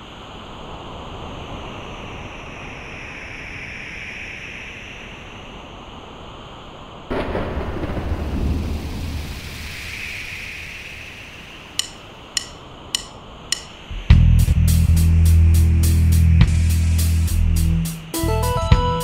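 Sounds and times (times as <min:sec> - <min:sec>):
steady rain hiss: 0:00.0 - 0:18.5
thunderclap with deep rumble: 0:07.1 - 0:11.6.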